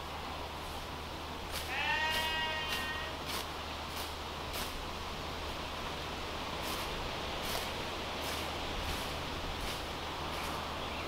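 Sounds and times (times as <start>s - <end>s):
scythe swishing through grass: 1.5s - 4.9s, 6.6s - 10.7s
animal bleat: 1.6s - 3.2s.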